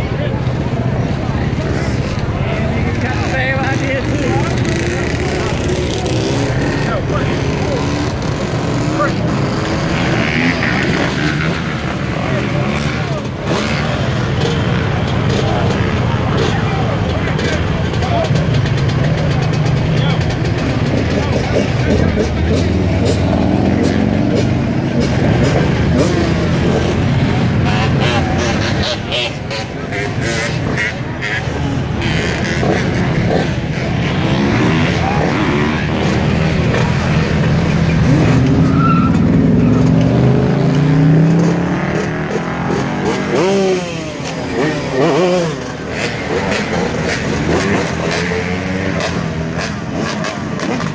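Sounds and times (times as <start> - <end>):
crowd talking: 0.0 - 50.9
dirt bike engines revving: 0.0 - 50.9.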